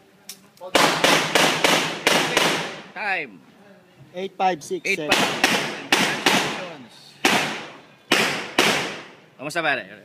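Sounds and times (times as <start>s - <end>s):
echoing gunshots: 0.7s - 2.9s, 5.1s - 9.2s.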